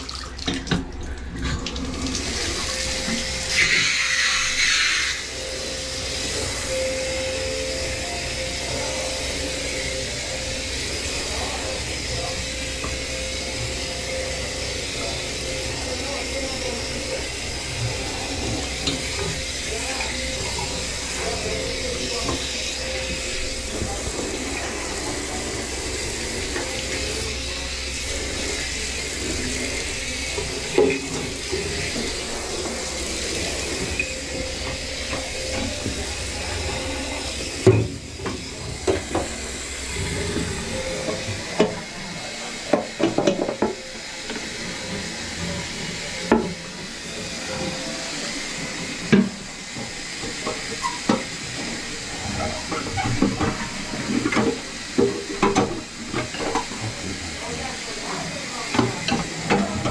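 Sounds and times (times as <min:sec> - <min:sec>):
shower spraying into bathtub: 0:00.0 - 0:59.9.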